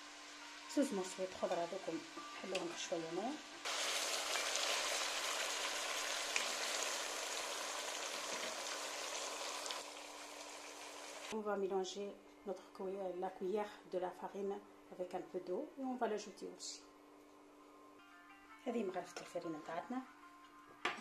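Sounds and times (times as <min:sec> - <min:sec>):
food sizzling in a pot: 0:00.0 - 0:11.4.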